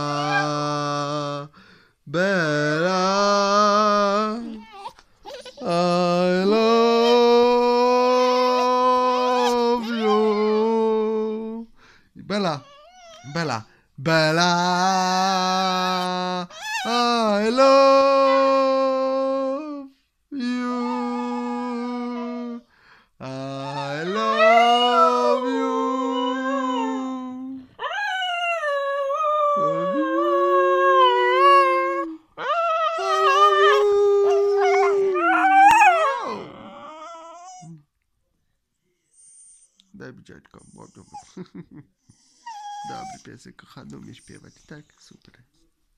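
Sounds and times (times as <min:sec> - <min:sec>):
dog howling: 0:00.0 - 0:00.6, 0:06.9 - 0:11.1, 0:23.5 - 0:37.7, 0:42.5 - 0:43.2.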